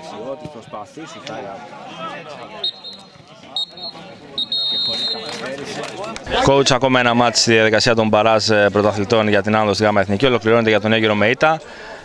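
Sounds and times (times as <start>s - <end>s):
faint voices of people: 0.0s - 12.0s
referee's whistle blasts: 2.6s - 5.4s.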